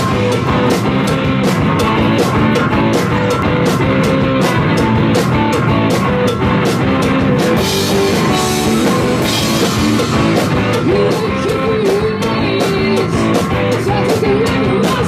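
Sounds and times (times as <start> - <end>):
drum strokes: 0.0 - 15.0
rock band playing: 0.0 - 15.0.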